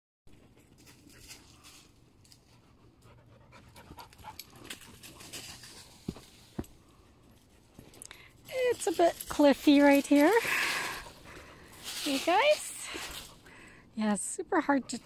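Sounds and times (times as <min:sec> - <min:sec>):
dog panting: 0:02.5 - 0:05.8, 0:14.6 - 0:15.0
footsteps on leaves: 0:04.7 - 0:06.8, 0:08.5 - 0:13.5.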